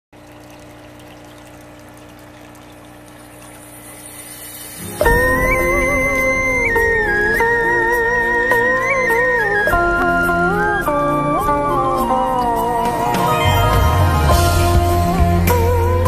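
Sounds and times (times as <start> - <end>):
water trickling in fish tank: 0.2 - 6.8
slow melody of held notes: 4.8 - 16.0.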